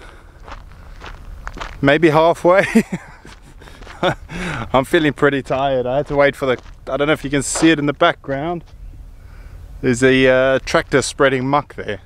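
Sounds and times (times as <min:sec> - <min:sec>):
footsteps on grass: 0:00.0 - 0:09.0
low steady rumble: 0:00.0 - 0:12.0.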